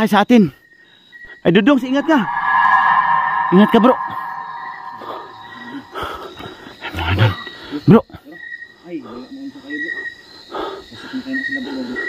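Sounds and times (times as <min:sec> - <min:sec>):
night insects chirring: 0:00.0 - 0:12.0.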